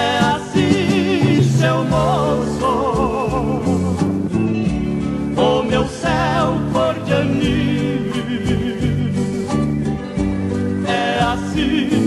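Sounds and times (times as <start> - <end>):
guitar accompaniment: 0.0 - 12.0.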